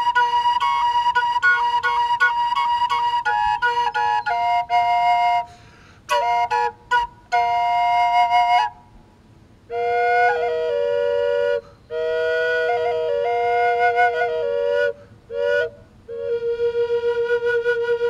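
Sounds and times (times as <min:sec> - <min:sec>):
drone flute playing melody: 0:00.0 - 0:09.0, 0:09.7 - 0:18.0.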